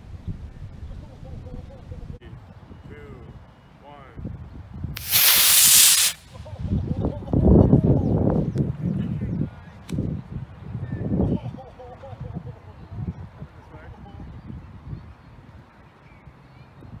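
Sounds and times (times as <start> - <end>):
rocket motor hissing: 5.0 - 6.3.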